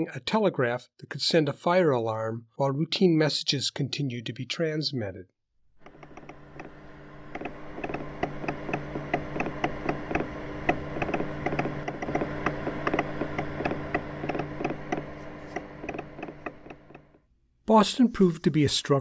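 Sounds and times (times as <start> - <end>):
telegraph instrument clicking: 5.8 - 17.1
low steady hum: 5.8 - 18.6.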